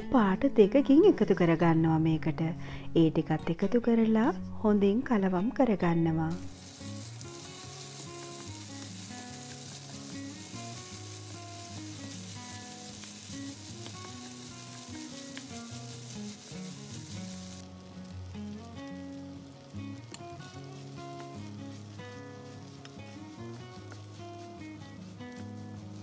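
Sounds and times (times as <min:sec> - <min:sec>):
soft background music: 0:00.0 - 0:26.0
food sizzling in a frying pan: 0:06.3 - 0:26.0
wooden spatula stirring: 0:06.5 - 0:17.7, 0:18.9 - 0:26.0.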